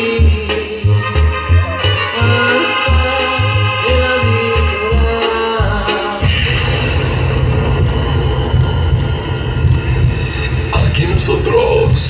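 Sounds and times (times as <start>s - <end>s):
live band music through pa: 0.0s - 11.3s.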